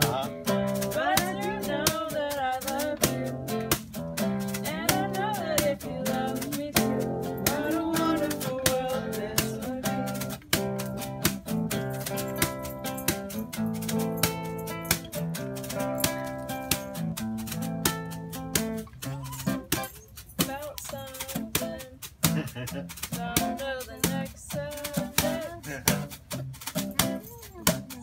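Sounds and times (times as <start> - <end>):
acoustic guitar strumming: 0.0 - 28.0.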